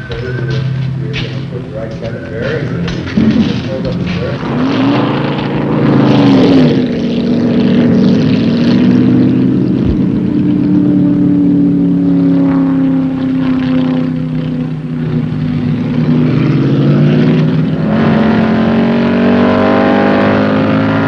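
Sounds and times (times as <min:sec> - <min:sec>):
race car engine at speed: 0:00.0 - 0:21.0.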